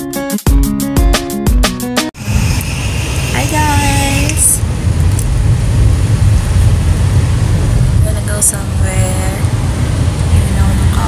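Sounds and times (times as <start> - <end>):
car cabin road and engine rumble: 2.2 - 11.0.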